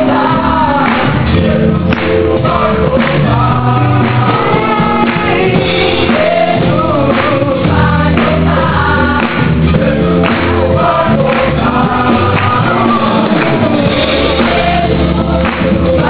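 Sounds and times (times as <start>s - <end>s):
band accompaniment: 0.0s - 16.0s
choir singing gospel song: 0.0s - 16.0s.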